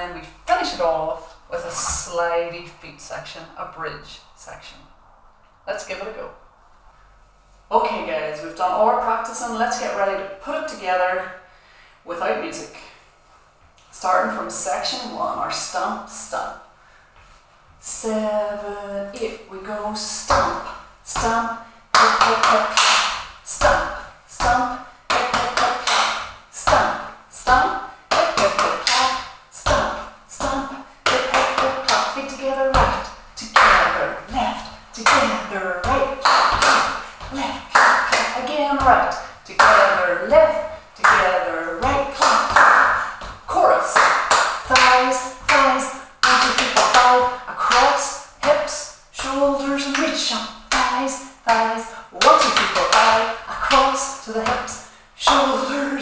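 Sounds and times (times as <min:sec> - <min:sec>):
woman calling out: 0:23.5 - 0:44.0.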